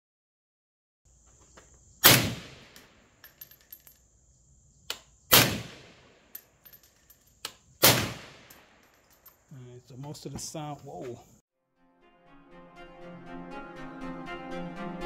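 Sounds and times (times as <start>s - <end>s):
rifle shots: 2.0s - 2.9s, 5.3s - 6.1s, 7.8s - 8.8s.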